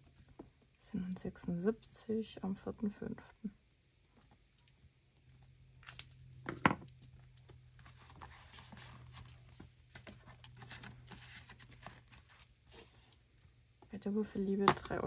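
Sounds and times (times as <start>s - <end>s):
faint low hum: 0.0s - 15.0s
binder sleeves rustling: 7.5s - 13.4s.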